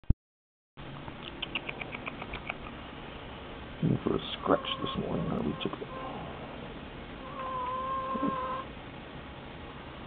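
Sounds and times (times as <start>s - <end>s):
bird making high ticks: 1.1s - 2.8s
sharp click: 1.1s - 2.8s.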